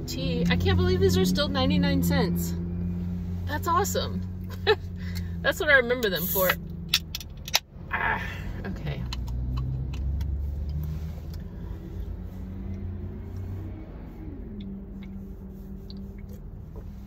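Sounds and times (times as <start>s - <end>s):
car engine running: 0.0s - 17.0s.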